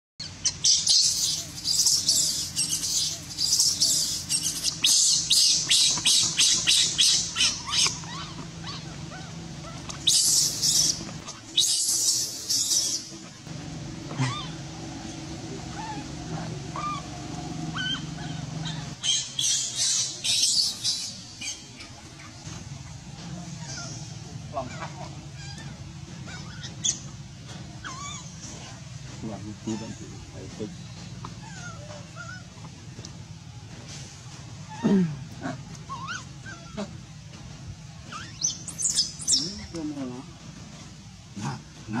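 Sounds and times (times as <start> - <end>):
baby monkey squealing: 0.2 - 13.3, 14.1 - 17.1, 17.7 - 22.3, 23.6 - 27.1, 27.8 - 28.8, 31.4 - 32.5, 35.9 - 36.9, 38.1 - 39.8.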